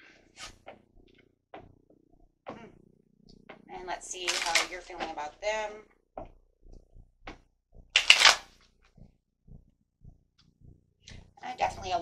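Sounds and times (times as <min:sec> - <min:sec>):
cards flicking: 0:04.3 - 0:04.7, 0:08.0 - 0:08.5
cards riffling: 0:04.3 - 0:04.7, 0:08.0 - 0:08.5.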